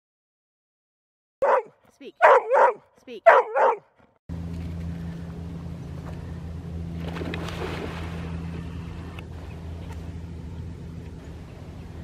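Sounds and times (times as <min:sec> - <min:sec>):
steady low hum: 0:02.2 - 0:12.0.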